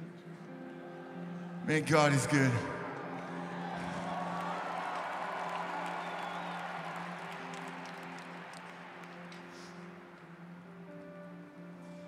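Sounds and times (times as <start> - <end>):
crowd cheering and applauding: 2.0 - 10.6
crowd whistles: 3.2 - 10.0.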